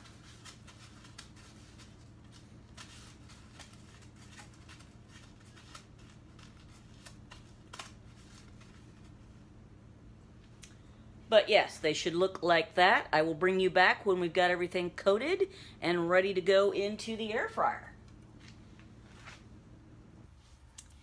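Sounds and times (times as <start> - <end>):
crackles of rolling in breadcrumbs: 0.0 - 9.2
steady low hum: 0.0 - 21.0.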